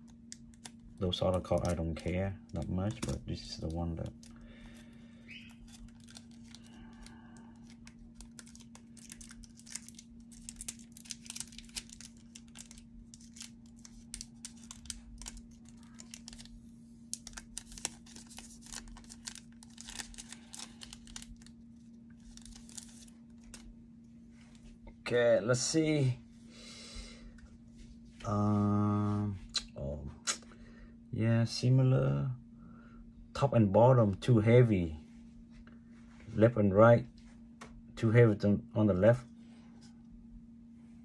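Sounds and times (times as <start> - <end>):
plastic sleeve crinkling: 0.0 - 23.7
low hum: 0.0 - 41.0.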